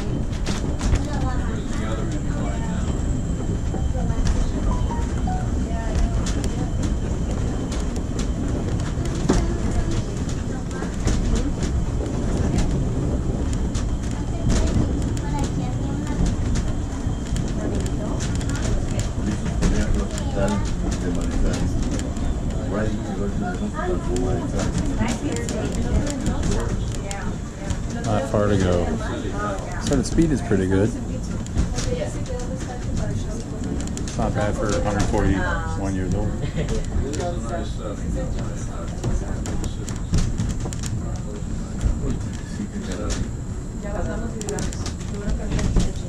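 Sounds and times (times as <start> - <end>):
funicular car rumbling: 0.0 - 46.0
sharp clicks and rattles: 29.5 - 37.6, 38.4 - 43.4, 44.0 - 46.0.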